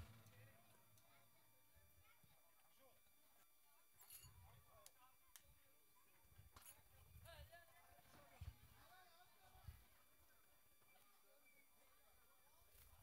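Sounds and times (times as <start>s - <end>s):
faint background voices: 0.0s - 13.0s.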